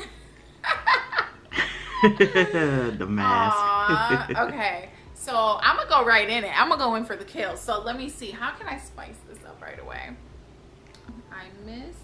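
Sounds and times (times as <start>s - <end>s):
woman laughing: 0.0s - 4.7s.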